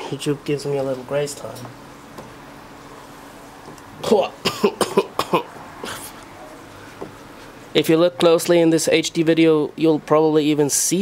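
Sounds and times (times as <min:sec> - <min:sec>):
man coughing: 0:04.0 - 0:06.1.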